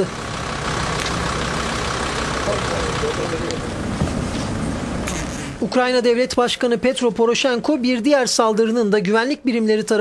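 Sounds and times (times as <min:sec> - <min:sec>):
vehicle engine idling: 0:00.0 - 0:05.7.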